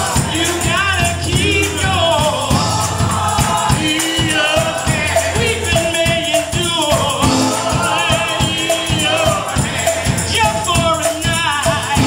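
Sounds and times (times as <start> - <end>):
hand clapping: 0.0 - 4.8
gospel choir singing: 0.0 - 12.0
instrumental backing: 0.0 - 12.0.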